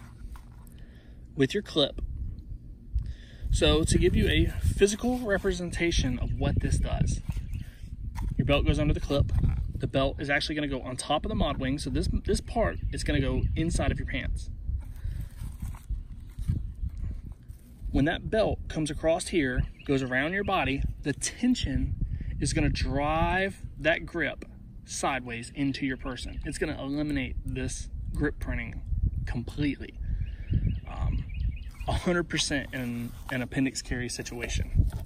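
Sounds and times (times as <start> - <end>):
wind rumbling on microphone: 0.0 - 35.0
bird chirping: 30.1 - 34.6.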